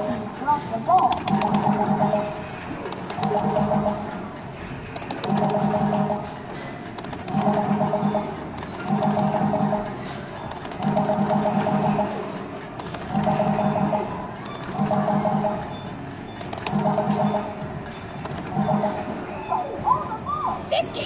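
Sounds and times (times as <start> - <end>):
sharp clicking: 1.0 - 1.7, 2.9 - 3.4, 4.9 - 5.6, 7.0 - 7.7, 8.5 - 9.4, 10.5 - 11.6, 12.8 - 13.6, 14.4 - 15.0, 16.4 - 17.0, 18.2 - 18.6
arcade machine electronic music: 1.0 - 20.1.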